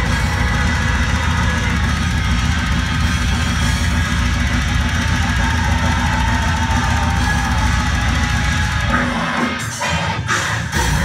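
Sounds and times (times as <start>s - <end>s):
metal band playing live: 0.0s - 11.0s.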